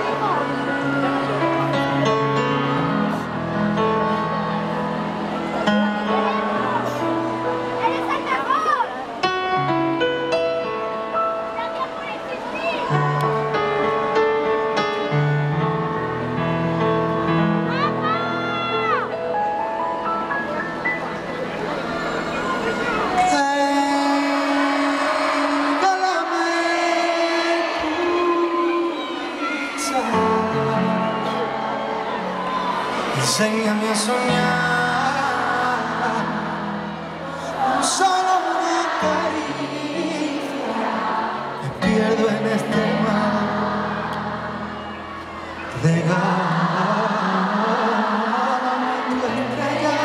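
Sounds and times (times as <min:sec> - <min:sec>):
concert crowd noise: 0:00.0 - 0:50.0
keyboard sustained chords: 0:00.0 - 0:50.0.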